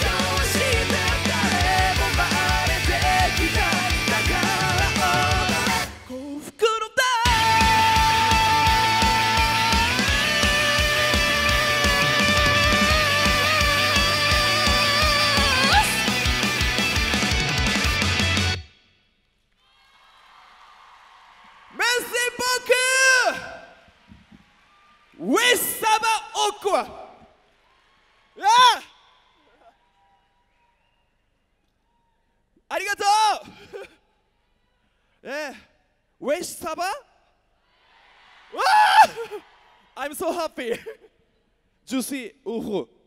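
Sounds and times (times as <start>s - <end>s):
man shouting over loudspeaker: 6.4s - 16.1s, 21.8s - 23.8s, 25.2s - 27.2s, 28.4s - 29.0s, 32.7s - 33.6s
loud shouted call: 28.4s - 29.8s.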